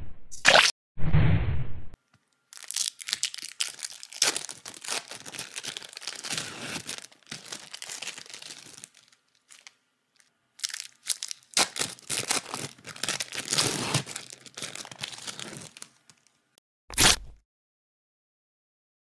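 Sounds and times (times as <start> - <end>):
crackling and crinkling: 2.0 - 16.4.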